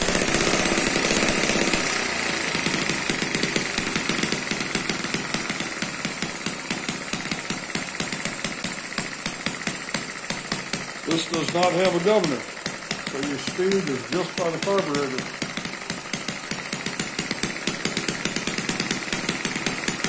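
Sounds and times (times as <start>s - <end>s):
model engine running: 0.0s - 20.0s.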